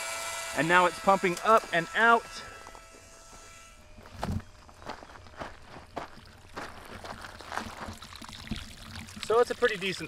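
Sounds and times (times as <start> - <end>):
footsteps crunching on gravel: 1.6 - 8.1.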